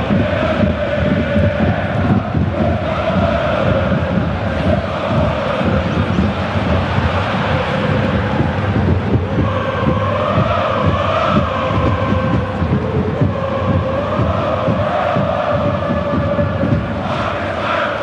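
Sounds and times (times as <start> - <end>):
crowd chanting: 0.0 - 18.0.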